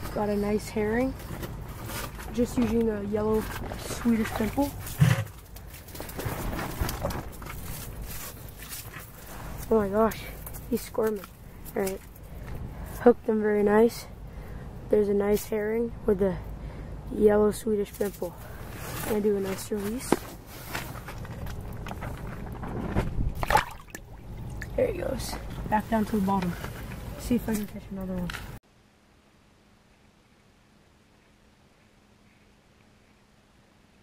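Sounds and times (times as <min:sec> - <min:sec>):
handling rustle: 0:00.0 - 0:13.0, 0:17.8 - 0:23.8, 0:24.8 - 0:28.6
fish splashing into water: 0:23.4 - 0:24.7.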